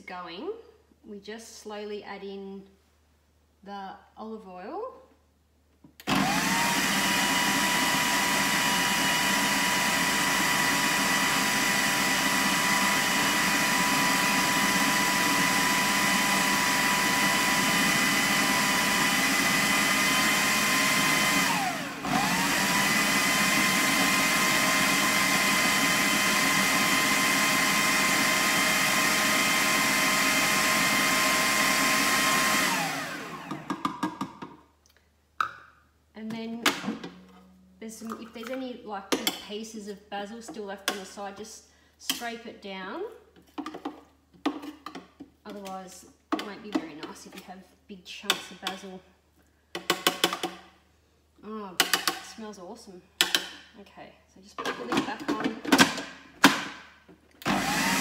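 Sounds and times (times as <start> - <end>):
food processor motor whine: 6.0 - 34.3, 57.4 - 58.0.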